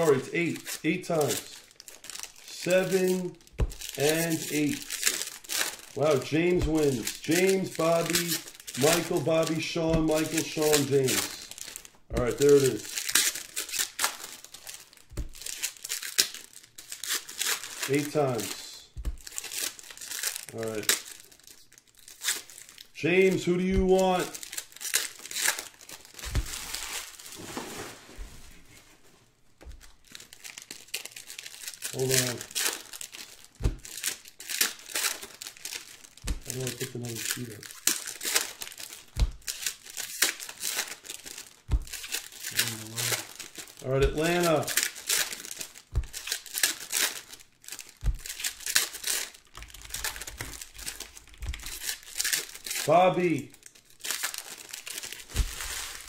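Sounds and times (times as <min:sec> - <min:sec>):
foil packs crinkling and tearing: 0:00.0 - 0:28.1, 0:29.6 - 0:56.0.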